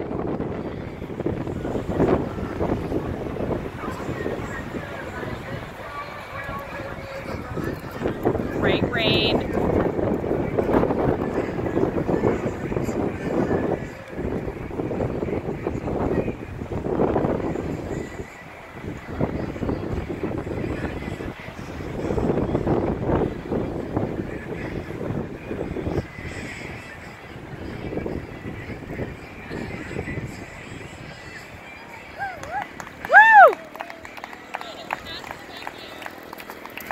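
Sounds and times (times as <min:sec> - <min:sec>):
faint voices: 0:00.0 - 0:36.9
wind buffeting microphone: 0:00.0 - 0:36.9.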